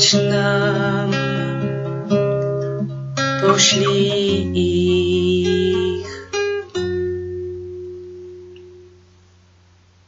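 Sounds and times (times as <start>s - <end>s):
acoustic guitar chord ringing: 2.2s - 9.2s
person singing: 3.4s - 6.4s.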